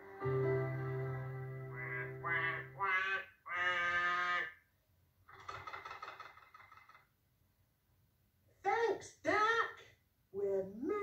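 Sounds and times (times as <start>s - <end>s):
music cue with held notes: 0.0s - 2.8s
cartoon duck quacking: 1.7s - 4.6s.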